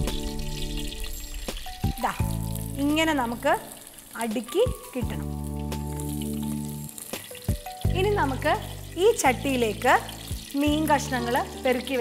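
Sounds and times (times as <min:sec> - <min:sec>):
leaves sizzling in a pot: 0:00.0 - 0:12.0.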